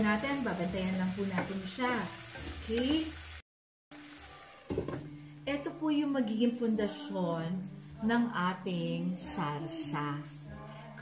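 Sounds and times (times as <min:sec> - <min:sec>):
vegetables sizzling in a pan: 0:00.0 - 0:05.4.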